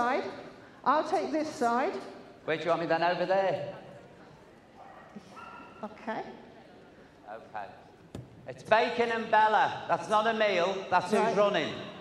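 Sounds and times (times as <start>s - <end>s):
dog yip: 4.8s - 5.8s.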